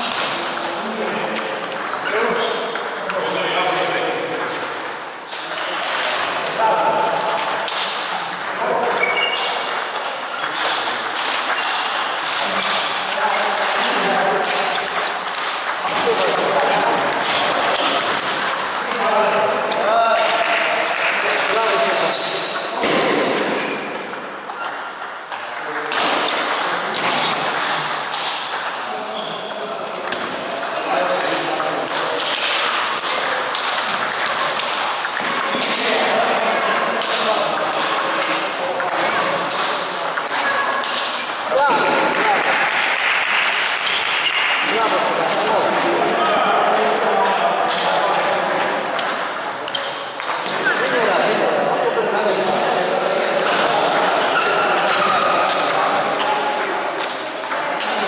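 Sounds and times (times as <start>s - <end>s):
table tennis balls clicking: 0.0s - 51.4s, 53.4s - 58.0s
people talking: 0.0s - 58.0s.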